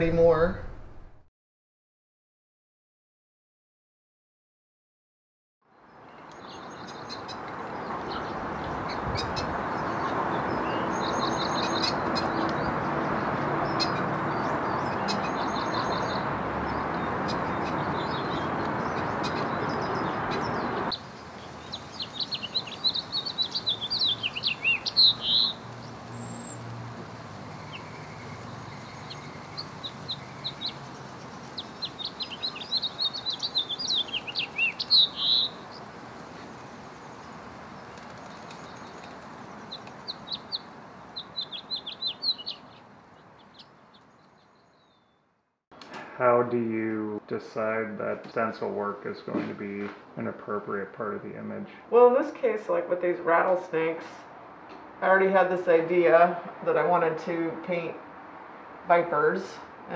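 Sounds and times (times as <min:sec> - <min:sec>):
songbird chirping: 0:05.7 - 0:45.3.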